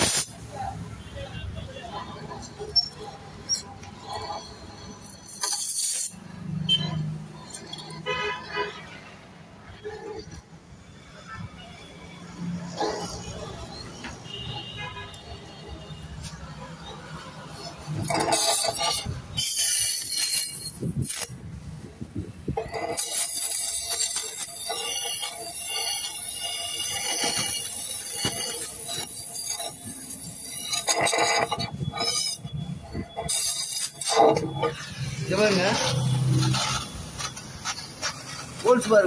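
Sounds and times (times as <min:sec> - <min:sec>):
gas torch flame hissing: 0:00.0 - 0:00.5.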